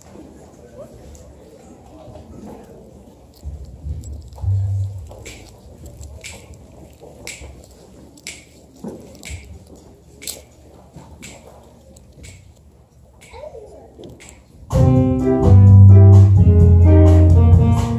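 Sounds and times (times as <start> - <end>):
jazz band playing: 14.7 - 17.9.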